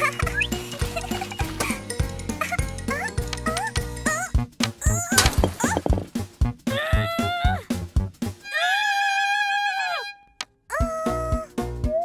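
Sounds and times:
bouncy cartoon music: 0.0 - 8.6, 10.3 - 12.0.

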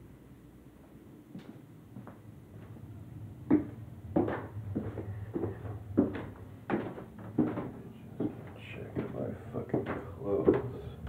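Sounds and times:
low hum: 0.0 - 11.0
footsteps down stairs: 0.8 - 11.0.

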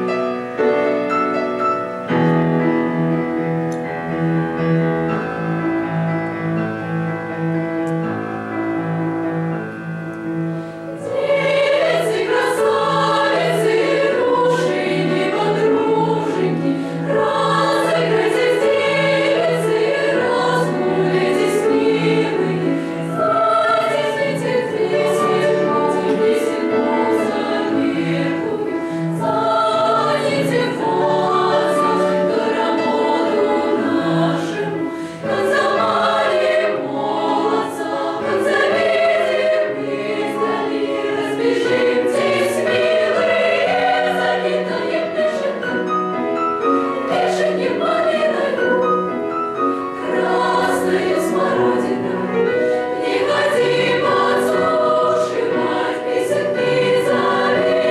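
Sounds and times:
children's choir singing: 11.0 - 57.9.

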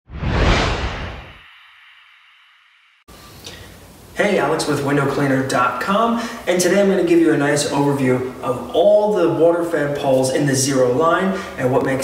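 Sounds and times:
whoosh sound effect: 0.1 - 3.0.

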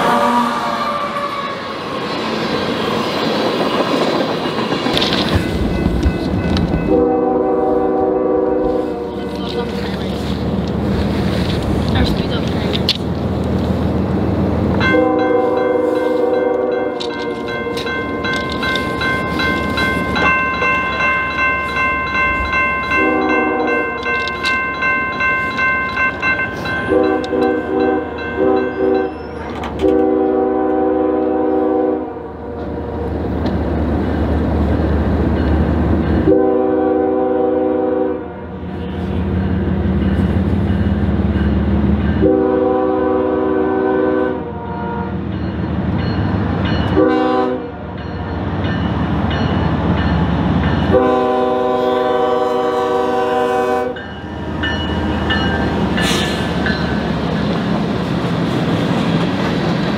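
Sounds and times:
locomotive horn blasts: 0.0 - 1.6, 6.8 - 9.8, 14.8 - 18.8, 22.9 - 24.2, 26.8 - 29.2, 29.8 - 32.9, 36.2 - 38.6, 42.2 - 45.2, 46.9 - 47.8, 50.9 - 54.1
locomotive engine rumble: 1.7 - 43.8
crossing bell ringing: 5.0 - 8.1, 14.8 - 30.2, 39.1 - 42.5, 45.2 - 58.0.

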